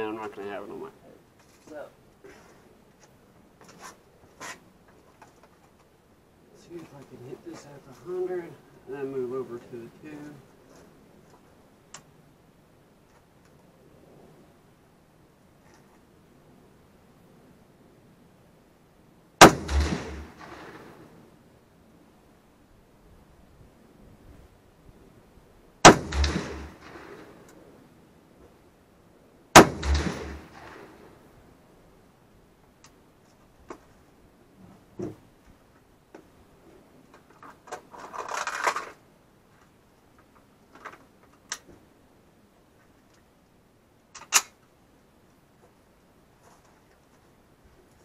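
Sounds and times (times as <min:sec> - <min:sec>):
rustle: 0:00.0 - 0:48.0
rifle shots echoing: 0:19.4 - 0:21.2, 0:25.8 - 0:27.5, 0:29.6 - 0:31.2
small clicks and knocks: 0:37.1 - 0:41.9.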